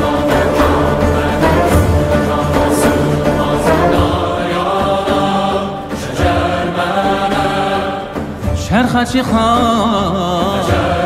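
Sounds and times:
low instrumental drone: 0:00.0 - 0:08.6
choir singing chant-like notes: 0:00.0 - 0:11.0.

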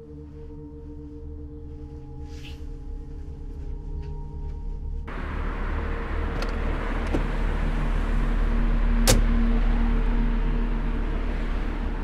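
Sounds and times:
steady low rumble: 0:03.0 - 0:12.0
car door clicks: 0:09.0 - 0:09.3.

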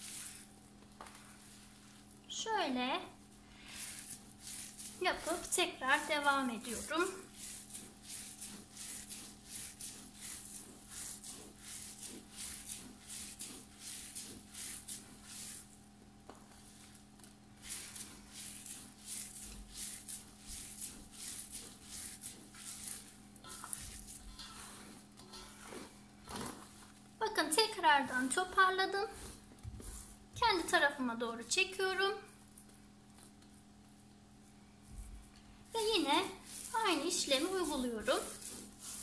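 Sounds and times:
hands kneading mixture on metal tray: 0:00.0 - 0:39.0.

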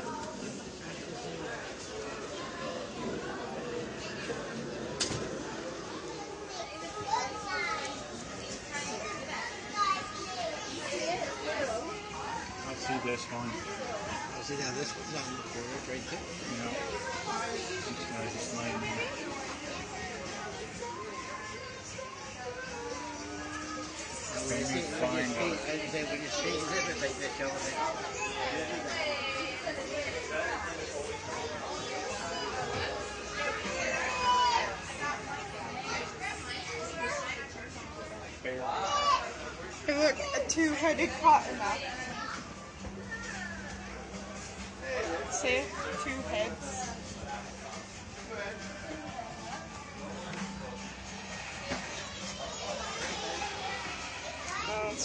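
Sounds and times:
children chattering and calling: 0:00.0 - 0:55.0
crowd talking: 0:00.0 - 0:55.0.

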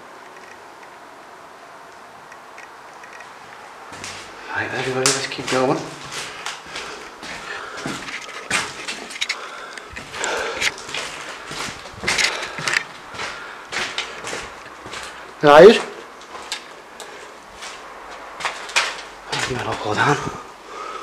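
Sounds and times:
footsteps crunching on debris: 0:03.2 - 0:20.4.

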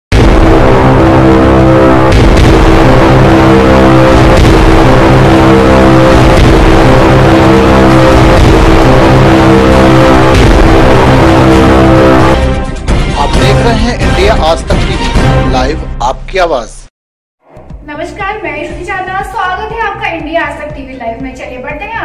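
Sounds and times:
news intro theme music: 0:00.1 - 0:16.6.

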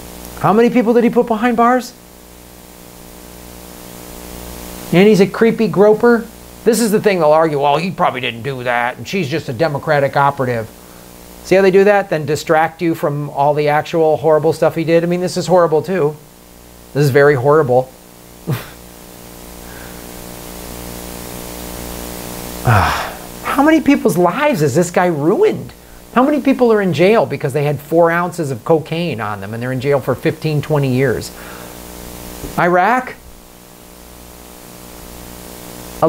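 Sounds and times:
faint mains hum: 0:00.0 - 0:36.0
steady hiss: 0:00.0 - 0:36.0
man's voice: 0:05.0 - 0:10.7, 0:22.7 - 0:31.3, 0:32.6 - 0:33.2
person sighing: 0:18.5 - 0:18.8, 0:22.6 - 0:23.4.

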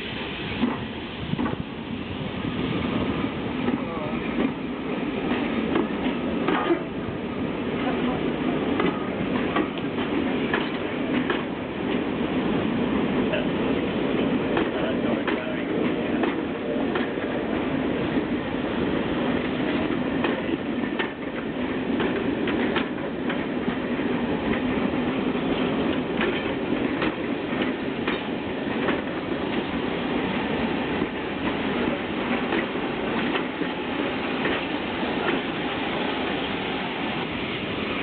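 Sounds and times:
train wheels rumbling on rail: 0:00.0 - 0:38.0
wheels clicking over rail joints: 0:05.2 - 0:07.0, 0:08.7 - 0:12.1, 0:19.4 - 0:29.8, 0:30.9 - 0:35.5.

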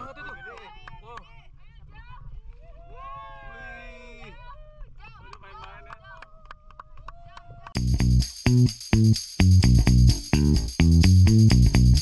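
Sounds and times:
steady low rumble: 0:07.8 - 0:12.0.

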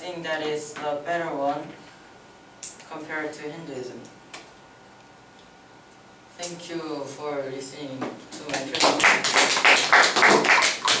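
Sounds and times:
small group applauding: 0:08.5 - 0:11.0.

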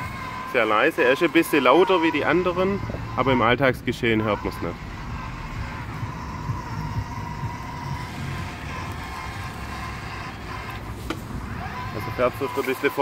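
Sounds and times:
robot lawn mower motor whine: 0:04.4 - 0:13.0.

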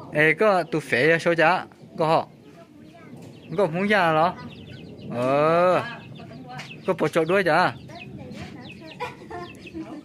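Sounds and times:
faint voices: 0:00.0 - 0:10.0
chickens clucking: 0:00.1 - 0:10.0.

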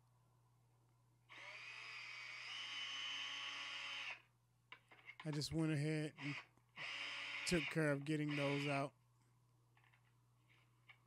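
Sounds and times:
cordless drill motor whine: 0:01.3 - 0:04.2, 0:06.2 - 0:08.8.

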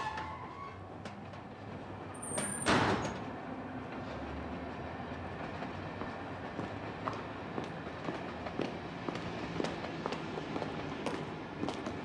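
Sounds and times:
train squeal: 0:00.0 - 0:00.9
train rumbling: 0:03.0 - 0:12.0.

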